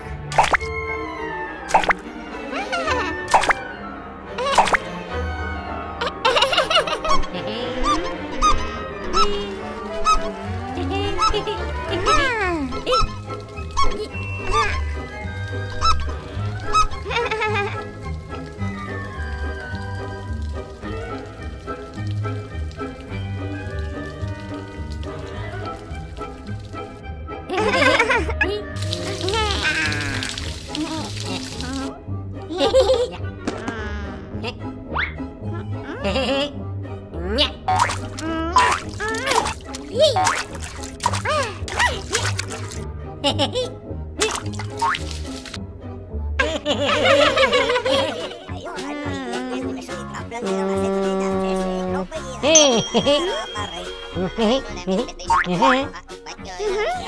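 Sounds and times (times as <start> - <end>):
cartoon background music: 0.0 - 57.0
squeaky honk sound effects: 7.1 - 10.4, 52.6 - 54.6.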